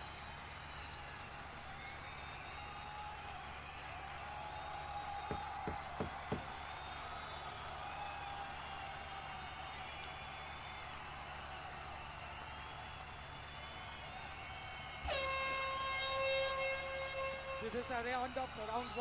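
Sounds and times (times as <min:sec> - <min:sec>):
crowd noise: 0:00.0 - 0:19.0
loud steady horn: 0:15.0 - 0:18.4.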